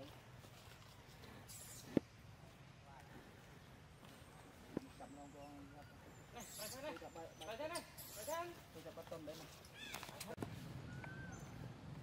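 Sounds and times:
macaques squeaking and cooing: 1.4 - 2.0, 5.3 - 8.7, 9.6 - 10.3.

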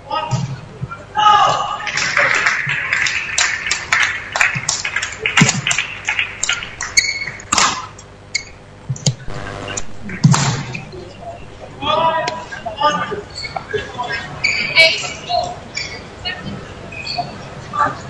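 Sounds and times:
voices in sports hall: 0.0 - 18.0.

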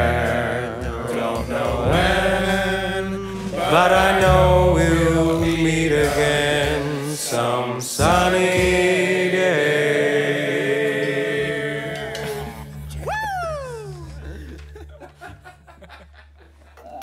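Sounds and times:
bass line: 0.0 - 7.2, 11.4 - 15.0
man singing with vibrato: 0.0 - 10.0.

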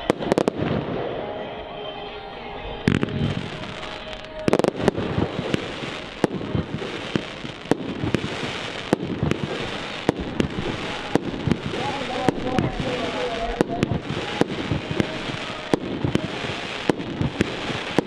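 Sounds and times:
fireworks bursting: 0.0 - 18.0.

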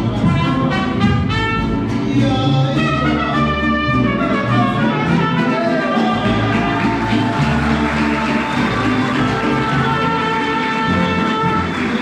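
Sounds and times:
trumpet melody: 0.0 - 2.1, 2.7 - 12.0
strummed guitars: 0.0 - 12.0.

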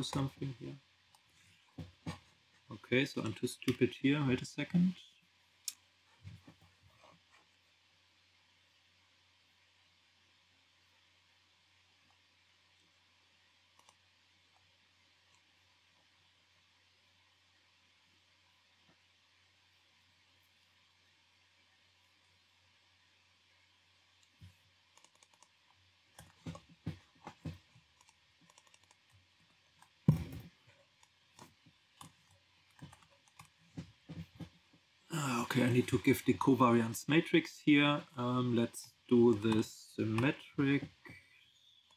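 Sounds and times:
steady low hum: 0.0 - 41.9
faint computer clicks: 24.2 - 25.6, 27.3 - 29.1.

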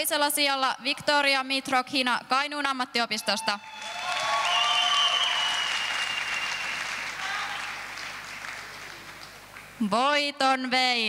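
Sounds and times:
voices cheering: 3.5 - 7.8
audience applauding: 3.7 - 9.7.

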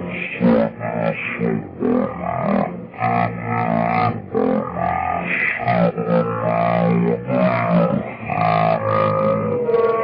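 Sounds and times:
distorted cartoon voice singing: 0.0 - 10.0.

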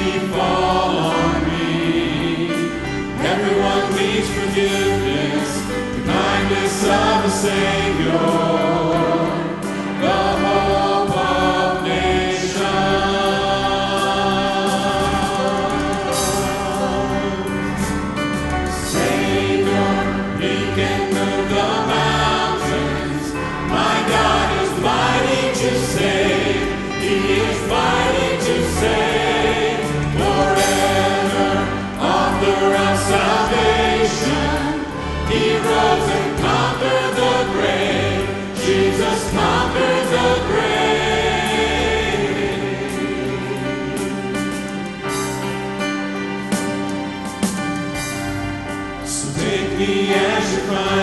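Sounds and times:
gospel group singing: 0.0 - 51.0
instrumental accompaniment: 0.0 - 51.0.

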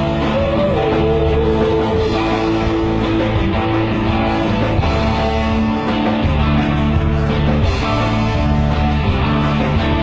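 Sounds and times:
amplified electric guitars: 0.0 - 10.0
live rock band playing: 0.0 - 10.0.

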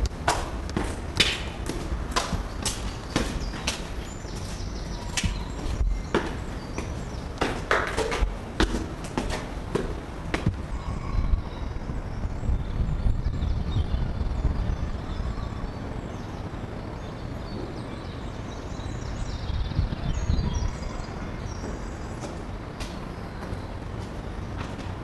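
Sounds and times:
footsteps on concrete stairs: 0.0 - 10.8, 21.4 - 25.0.

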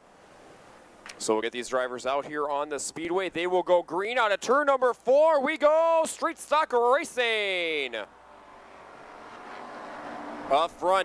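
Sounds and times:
race car engines accelerating: 7.6 - 11.0.

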